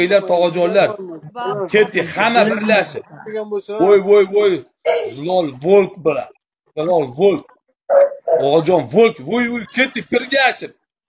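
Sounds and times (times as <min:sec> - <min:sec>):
man speaking excitedly: 0:00.0 - 0:07.5, 0:08.3 - 0:10.8.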